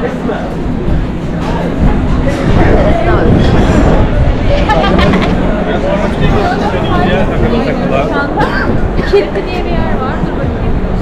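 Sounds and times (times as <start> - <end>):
people talking and laughing: 0.0 - 11.0
steady low rumble: 0.0 - 11.0.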